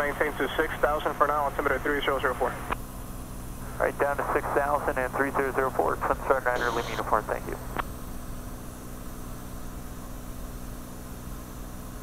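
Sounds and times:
aircraft engine and propeller drone: 0.0 - 12.0.

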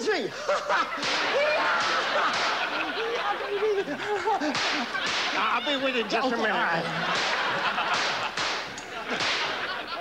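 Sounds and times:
audience laughing: 0.2 - 10.0.

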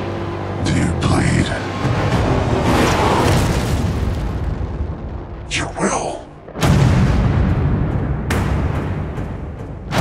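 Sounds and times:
deep cinematic impact boom: 6.5 - 10.0.

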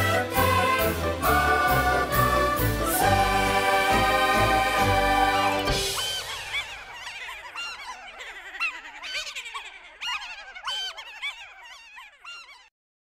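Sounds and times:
cartoonish voices laughing: 4.0 - 12.7.

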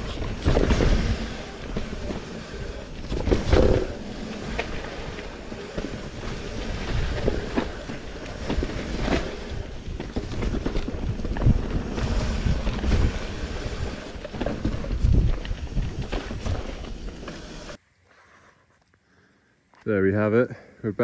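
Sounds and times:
wind buffeting microphone: 0.0 - 17.0
bike knocking and rattling: 0.0 - 17.8
bike tyres rolling on rough ground: 0.0 - 17.8.

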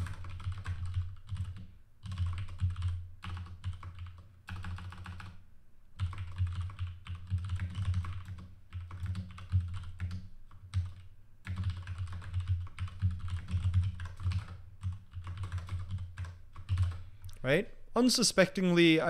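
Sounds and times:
computer keyboard typing: 0.0 - 5.4, 6.0 - 17.1.

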